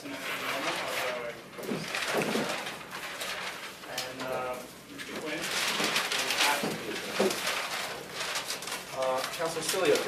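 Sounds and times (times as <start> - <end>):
large paper sheets rustling: 0.0 - 10.0.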